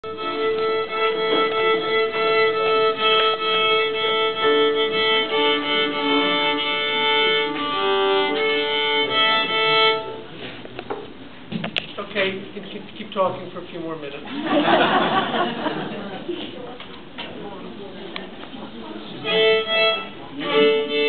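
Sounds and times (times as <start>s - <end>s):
fiddle and uilleann pipes playing: 0.0s - 10.4s, 19.2s - 21.0s.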